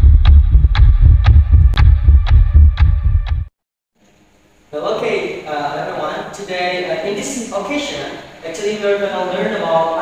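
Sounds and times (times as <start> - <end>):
throbbing bass pulses with ticks: 0.0 - 3.5.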